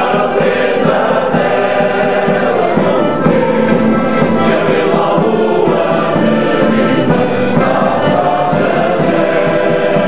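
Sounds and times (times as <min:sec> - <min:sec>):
accordion: 0:00.0 - 0:10.0
acoustic guitars: 0:00.0 - 0:10.0
male choir singing: 0:00.0 - 0:10.0.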